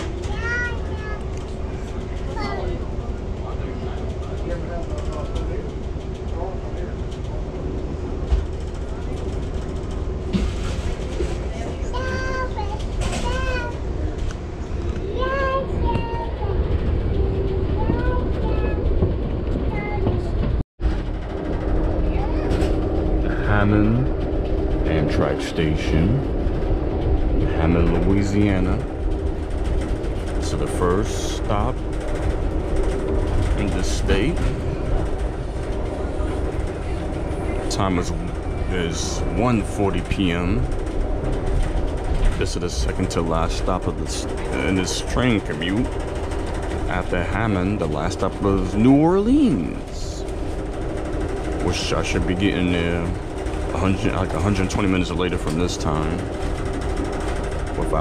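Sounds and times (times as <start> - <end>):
passengers talking: 0.0 - 58.0
train rumble inside coach: 0.0 - 58.0.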